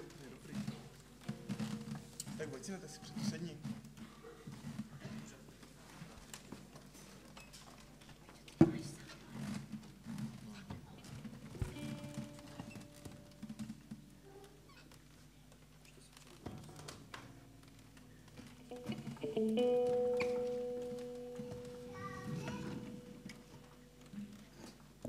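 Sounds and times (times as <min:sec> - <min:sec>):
held instrument notes: 0:11.6 - 0:14.2, 0:18.7 - 0:24.7.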